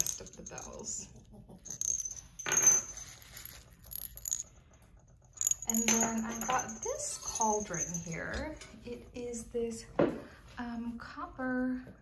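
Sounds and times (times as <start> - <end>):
ceramic bells clinking: 0.0 - 8.8.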